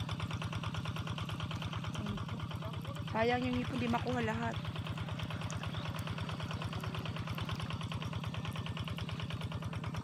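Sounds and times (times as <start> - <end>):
small engine idling: 0.0 - 10.0.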